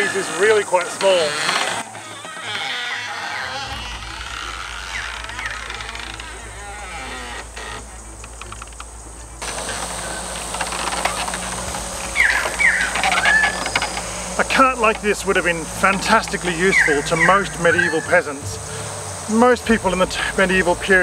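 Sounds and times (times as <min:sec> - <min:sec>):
birds calling: 0:00.0 - 0:21.0
steady low hum: 0:03.3 - 0:21.0.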